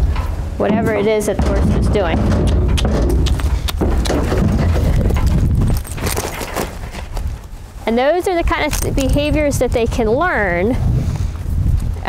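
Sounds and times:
trailer rattling: 0:00.0 - 0:07.1
hooves on trailer floor: 0:00.0 - 0:10.2.

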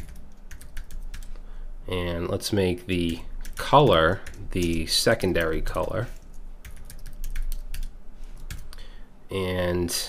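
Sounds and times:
typing on keyboard: 0:00.0 - 0:01.3, 0:03.4 - 0:08.7.

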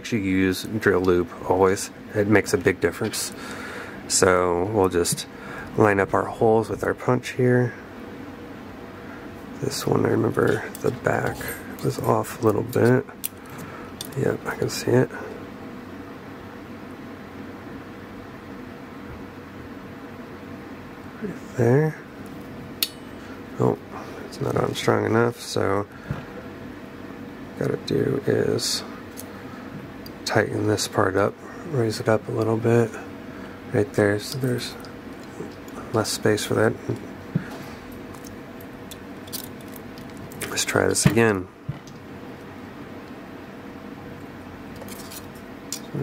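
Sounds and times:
faint room hum: 0:00.0 - 0:46.0.

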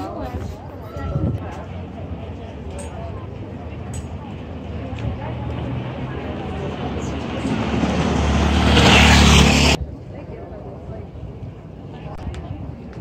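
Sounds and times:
vehicle passing close: 0:04.2 - 0:09.8.

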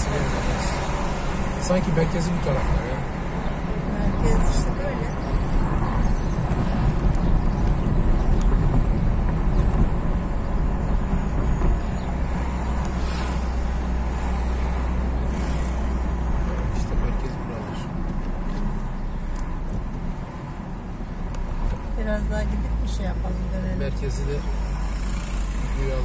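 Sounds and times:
car road and engine rumble: 0:00.0 - 0:26.0.

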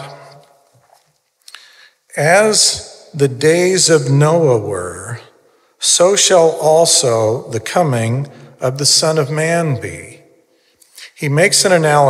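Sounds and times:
man's voice: 0:00.0 - 0:00.5, 0:02.1 - 0:10.2, 0:10.9 - 0:12.0.

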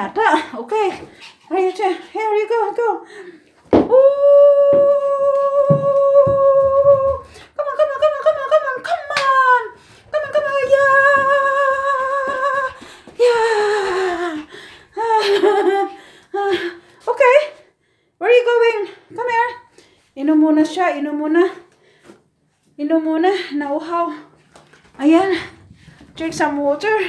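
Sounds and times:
woman humming: 0:03.9 - 0:08.5.

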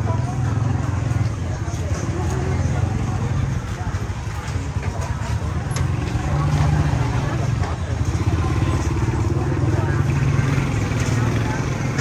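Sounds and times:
crowd chatter: 0:00.0 - 0:12.0
motorbike engine rumbling: 0:00.0 - 0:12.0.

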